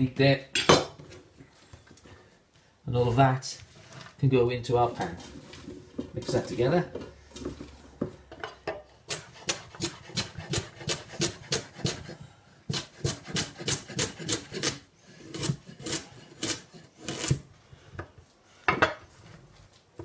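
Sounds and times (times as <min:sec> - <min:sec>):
knife chopping on wooden board: 0:09.1 - 0:14.8.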